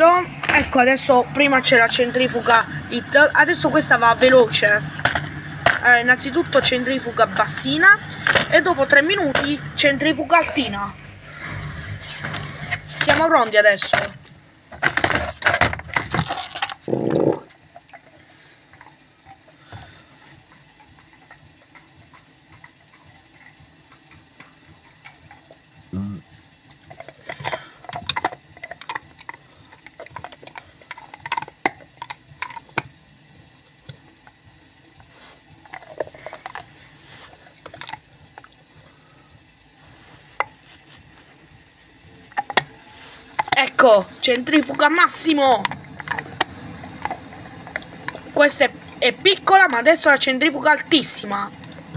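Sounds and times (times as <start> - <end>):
faint steady hum: 0.0 - 51.9
washing machine drum spinning: 41.9 - 51.9.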